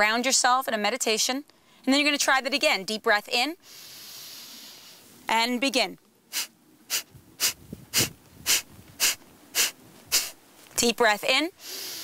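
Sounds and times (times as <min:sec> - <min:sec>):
woman exhaling sharply through nose: 0:03.6 - 0:05.0, 0:06.3 - 0:10.4, 0:11.6 - 0:12.0.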